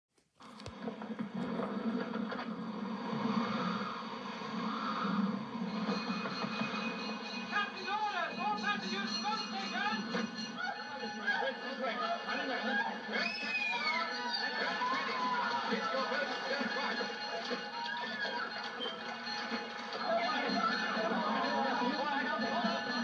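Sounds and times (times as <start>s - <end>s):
film music from television speaker: 0.4s - 23.0s.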